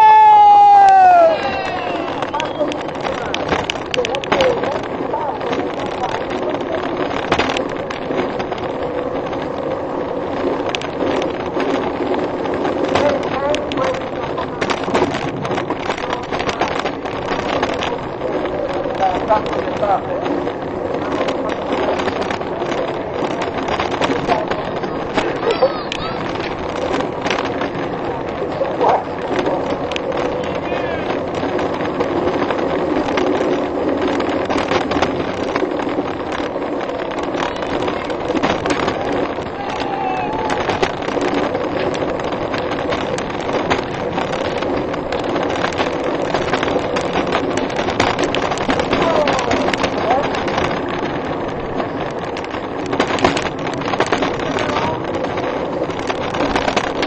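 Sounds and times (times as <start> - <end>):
cart wheels rolling on asphalt: 0.0 - 57.0
rattles and knocks: 2.2 - 57.0.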